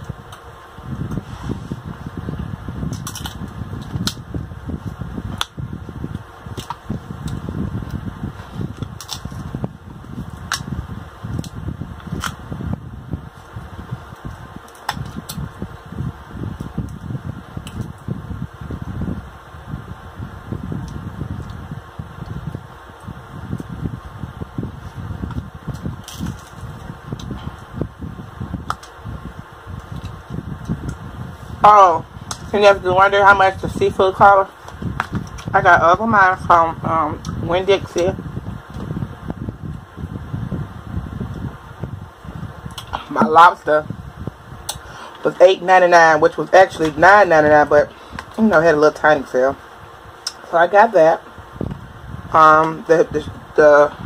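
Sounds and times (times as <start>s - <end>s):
constant low rumble: 0.0s - 54.0s.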